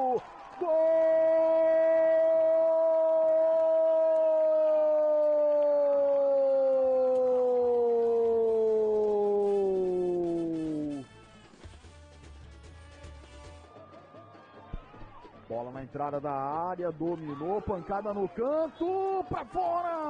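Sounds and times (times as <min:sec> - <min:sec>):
commentator's drawn-out goal cry: 0:17.1 - 0:20.0.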